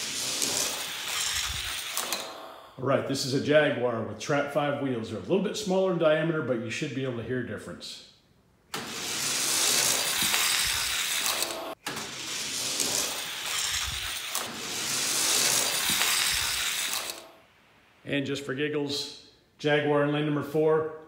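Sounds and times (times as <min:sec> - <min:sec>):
toy cars rolling on plastic track: 0:00.0 - 0:02.6, 0:08.8 - 0:17.4.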